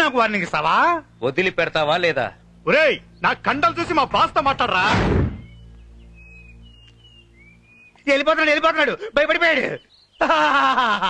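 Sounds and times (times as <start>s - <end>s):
low music drone: 0.0s - 9.0s
deep booming thud: 4.8s - 5.6s
faint high chirps: 5.4s - 8.1s.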